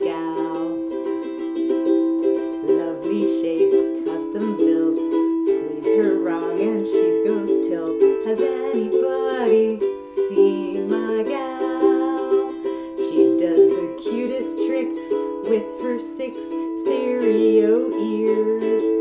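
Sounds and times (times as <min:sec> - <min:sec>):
ukulele strumming chords: 0:00.0 - 0:19.0.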